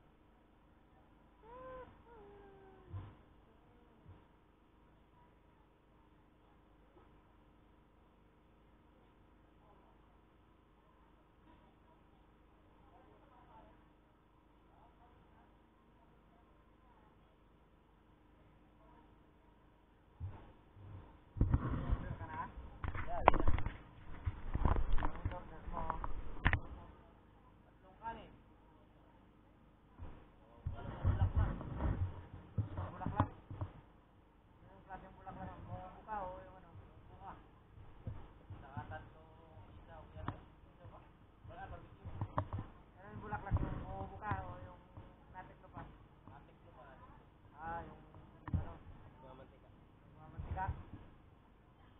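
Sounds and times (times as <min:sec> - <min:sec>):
cat meowing: 0:01.4 - 0:03.0
knocks and bumps on microphone: 0:02.8 - 0:03.2, 0:20.2 - 0:26.8, 0:30.0 - 0:33.9, 0:36.8 - 0:45.2, 0:48.2 - 0:49.0, 0:50.3 - 0:51.1.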